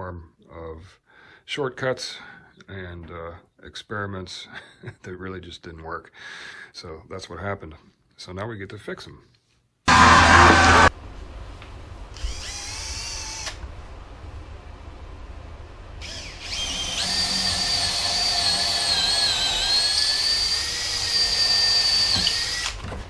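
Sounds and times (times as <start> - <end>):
cordless drill boring into wood: 9.9 - 10.9, 12.2 - 13.6, 16.0 - 22.9.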